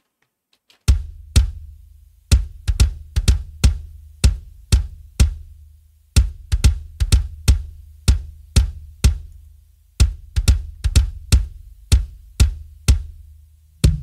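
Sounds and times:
electronic kick drum loop: 0:00.9 - 0:14.0.

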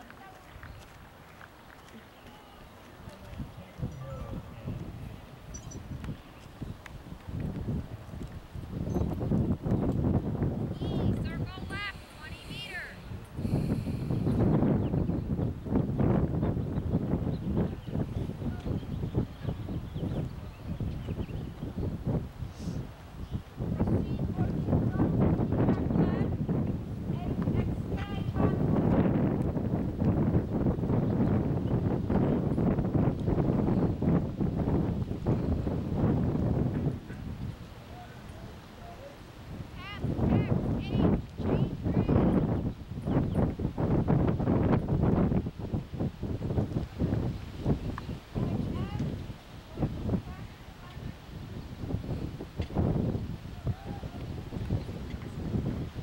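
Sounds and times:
wind rumble on microphone: 0:00.0 - 0:56.0.

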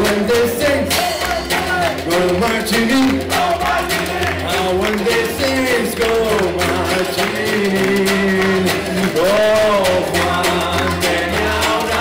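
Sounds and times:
dixieland swing band playing: 0:00.0 - 0:12.0
walking upright bass: 0:00.0 - 0:12.0.

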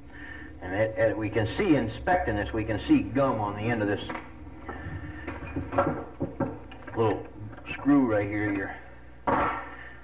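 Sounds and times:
steady low hum: 0:00.0 - 0:10.0
person speaking: 0:06.8 - 0:08.9.

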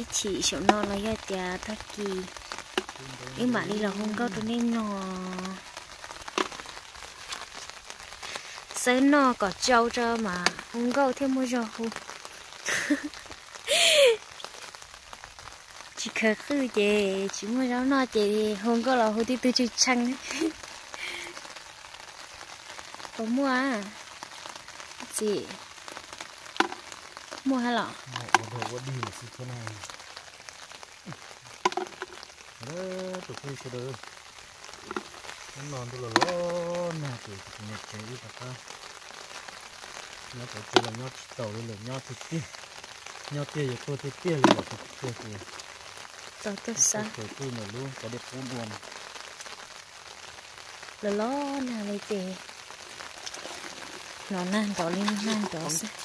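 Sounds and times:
small scattered ticks: 0:00.0 - 0:13.6, 0:14.2 - 0:56.0
light rain pattering: 0:00.0 - 0:56.0.

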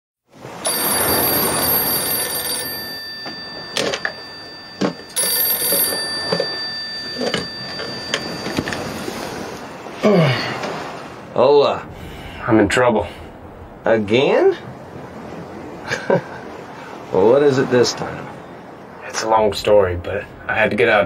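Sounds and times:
telephone ringing: 0:00.6 - 0:10.0.

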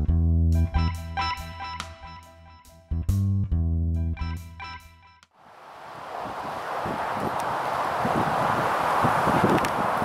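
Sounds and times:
gusty wind on microphone: 0:05.4 - 0:10.0.

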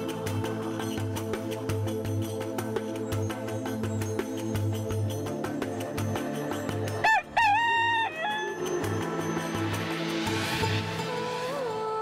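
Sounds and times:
rooster crowing: 0:07.0 - 0:08.6.

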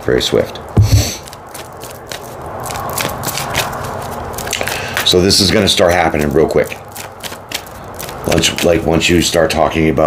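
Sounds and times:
cards being shuffled: 0:00.8 - 0:08.9.

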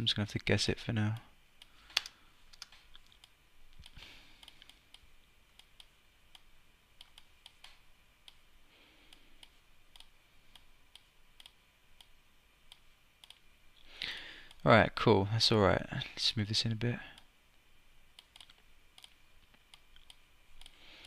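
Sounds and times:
mouse and keyboard clicking: 0:01.9 - 0:04.8, 0:18.2 - 0:20.8.

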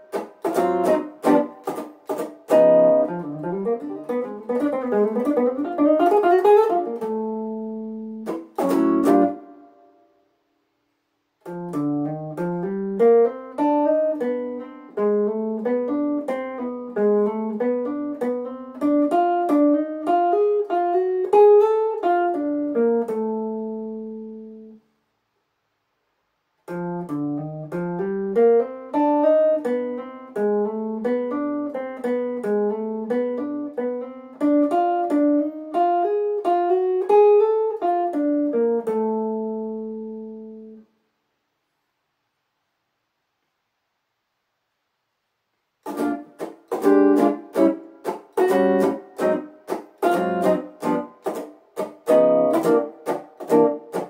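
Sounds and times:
clean electric guitar jazz run: 0:00.0 - 0:09.7, 0:45.8 - 0:54.0.

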